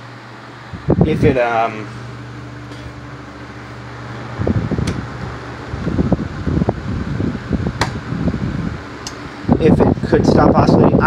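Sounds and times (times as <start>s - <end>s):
electric fan motor hum: 0.0s - 11.0s
wind buffeting microphone: 0.7s - 1.4s, 4.0s - 11.0s.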